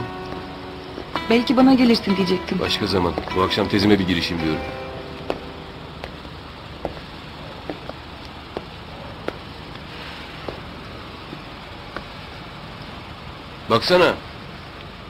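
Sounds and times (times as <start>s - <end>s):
footsteps on pavement: 0.0s - 12.4s
street background noise: 0.0s - 15.0s.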